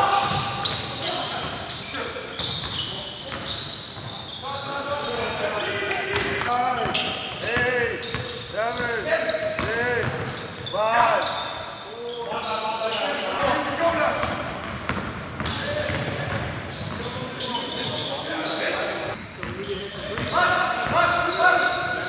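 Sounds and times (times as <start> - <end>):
sneakers squeaking on court: 0.1 - 22.0.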